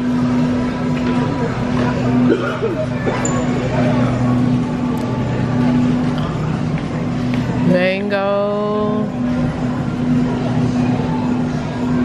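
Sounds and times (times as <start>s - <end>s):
freezer electrical hum: 0.0s - 12.0s
store background noise: 0.0s - 12.0s.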